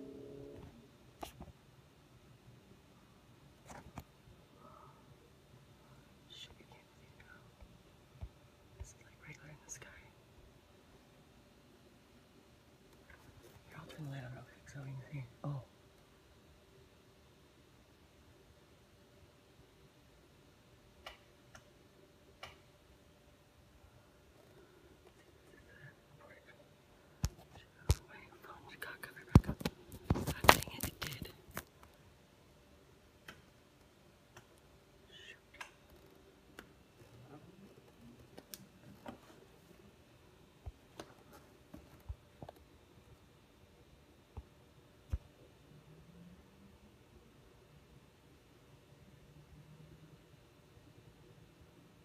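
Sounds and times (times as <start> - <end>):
faint whisper: 3.6 - 7.7, 8.7 - 10.3, 13.1 - 15.7, 23.9 - 31.4, 35.0 - 36.1, 37.0 - 39.8.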